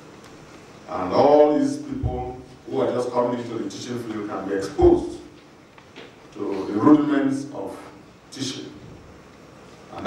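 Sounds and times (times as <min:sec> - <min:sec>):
man speaking in deep voice: 0:00.9 - 0:05.4, 0:06.4 - 0:08.8.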